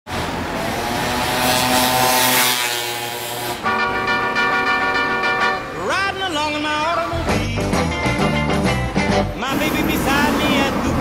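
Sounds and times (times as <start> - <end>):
vehicle noise with sinking tone: 0.1 - 6.0
vehicle horn toot: 3.6 - 5.8.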